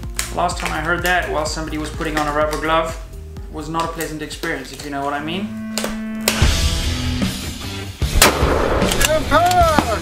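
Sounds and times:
gunshot with echo: 0:08.1 - 0:09.0.

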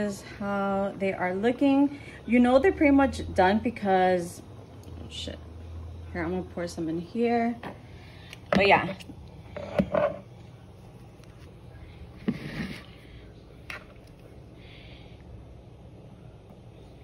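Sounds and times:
steady low hum: 0:00.0 - 0:17.0.

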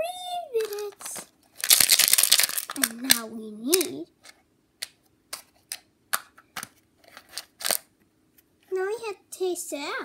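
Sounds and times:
toys crinkling and rustling: 0:00.5 - 0:04.4, 0:06.6 - 0:07.9.

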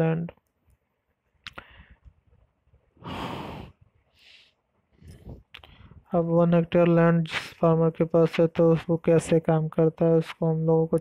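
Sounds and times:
sigh-like exhale: 0:03.0 - 0:04.6.

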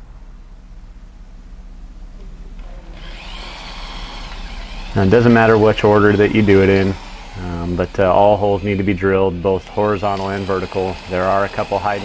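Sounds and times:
low steady hum: 0:00.0 - 0:12.0
electric drill boring through steel: 0:03.0 - 0:12.0.

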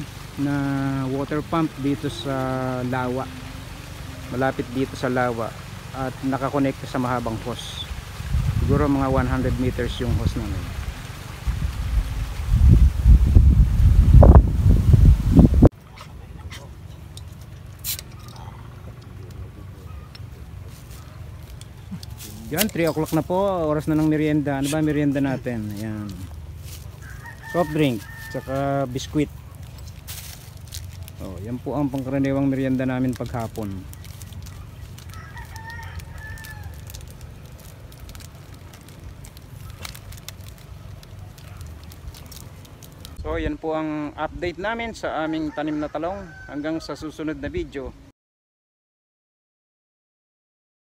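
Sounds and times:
water pouring from a hose: 0:00.0 - 0:15.5, 0:17.0 - 0:19.4, 0:20.2 - 0:43.2
wind buffeting microphone: 0:07.9 - 0:15.7
rooster crowing: 0:26.9 - 0:29.2, 0:35.0 - 0:37.0, 0:45.1 - 0:47.0.

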